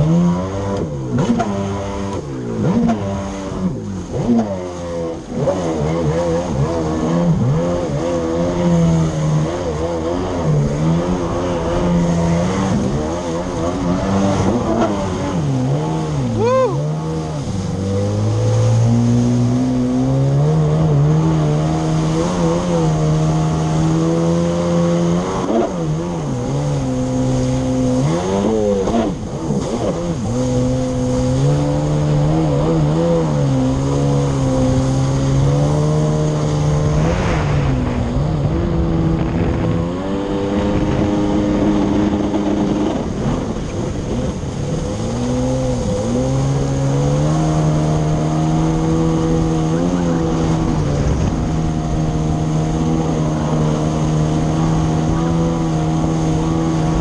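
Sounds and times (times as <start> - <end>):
jet ski engine revving: 0.0 - 57.0.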